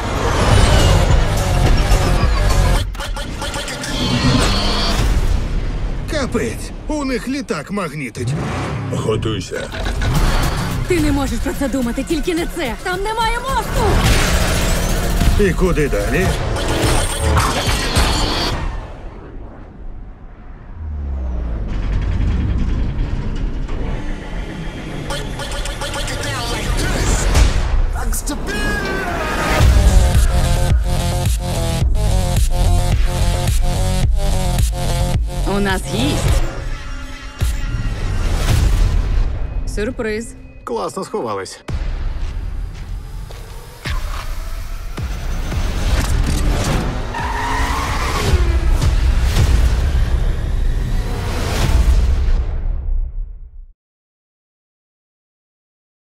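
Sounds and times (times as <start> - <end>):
loud car engine: 0.0 - 2.9, 13.5 - 18.5, 20.5 - 25.4
car tyres squealing: 3.6 - 5.1, 47.0 - 48.6
deep low rumble: 18.8 - 24.9.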